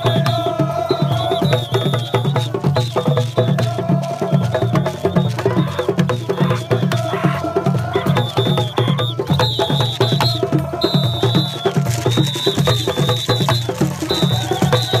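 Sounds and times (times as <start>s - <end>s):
fast hand drumming: 0.0s - 15.0s.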